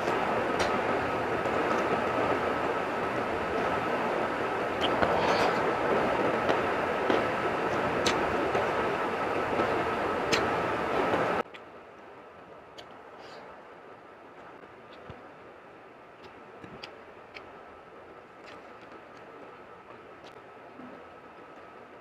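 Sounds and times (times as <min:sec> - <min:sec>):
faint constant whine: 0:00.0 - 0:22.0
steady rushing noise: 0:00.0 - 0:22.0
eating sounds: 0:10.3 - 0:10.6, 0:16.2 - 0:17.6, 0:18.3 - 0:21.7.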